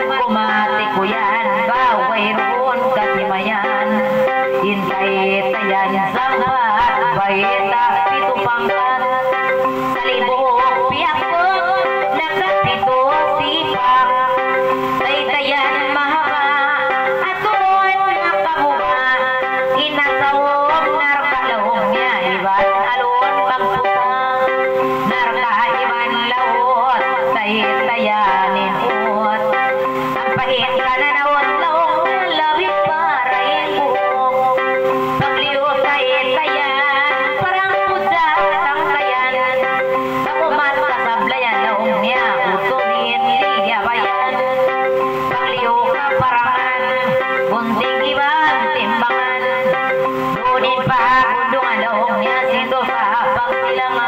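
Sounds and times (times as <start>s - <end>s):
electronic keyboard drone: 0.0s - 54.0s
woman singing: 0.0s - 54.0s.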